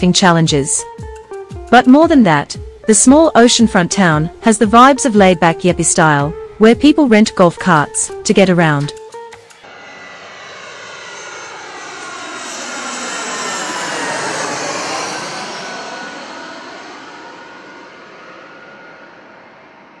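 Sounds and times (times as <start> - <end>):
jet airliner flying overhead: 9.5 - 20.0.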